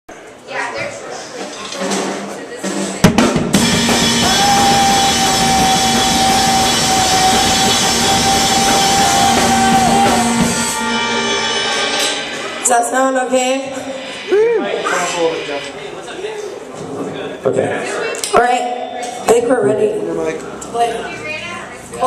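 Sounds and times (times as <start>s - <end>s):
drum kit played hard: 1.8s - 16.7s
cymbals washing: 3.0s - 16.7s.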